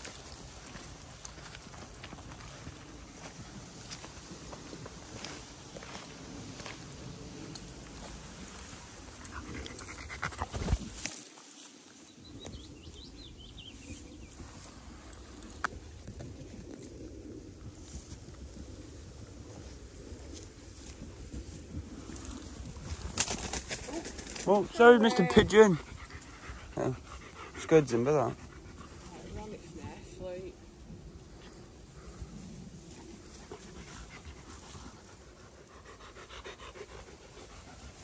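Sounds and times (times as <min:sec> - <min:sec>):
rustling in long grass: 0:00.0 - 0:12.9, 0:13.6 - 0:24.6.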